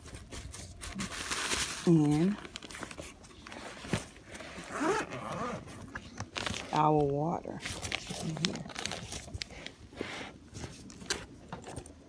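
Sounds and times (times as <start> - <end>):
fabric bag rustling: 0.0 - 10.9.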